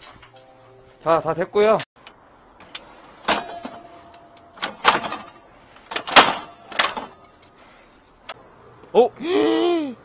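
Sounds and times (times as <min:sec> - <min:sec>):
metal ladder scraping clatters: 0:02.7 - 0:07.6.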